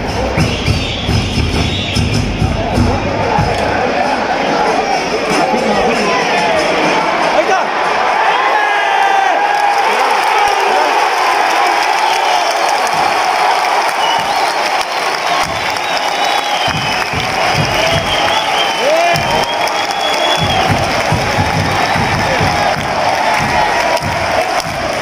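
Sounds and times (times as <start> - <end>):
low drum beat: 0.0 - 3.8, 16.7 - 18.4, 20.4 - 25.0
crowd cheering: 0.0 - 25.0
crowd singing and chanting: 2.2 - 8.2, 15.3 - 25.0.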